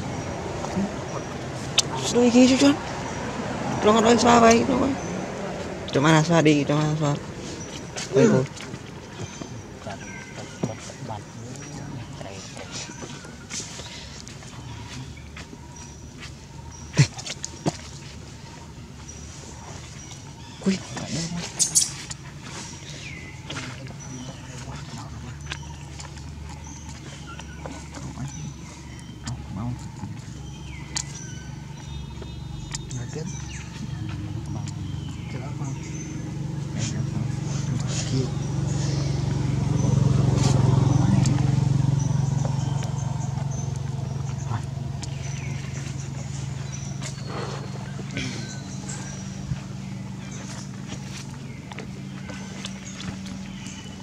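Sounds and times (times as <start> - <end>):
vehicle engine running: 0.0 - 54.0.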